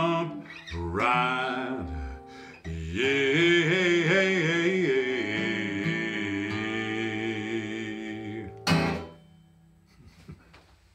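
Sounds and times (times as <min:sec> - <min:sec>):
acoustic guitar chord: 0:00.0 - 0:09.3
loud guitar strum: 0:08.5 - 0:09.3.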